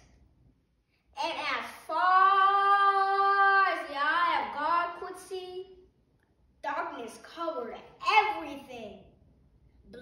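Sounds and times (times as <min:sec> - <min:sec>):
girl reciting: 0:01.1 - 0:05.9, 0:06.6 - 0:09.1.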